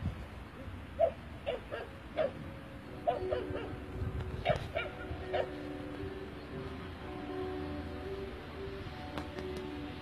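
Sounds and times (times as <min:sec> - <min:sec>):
dogs yipping: 0:01.0 - 0:02.4, 0:03.0 - 0:03.8, 0:04.4 - 0:05.6.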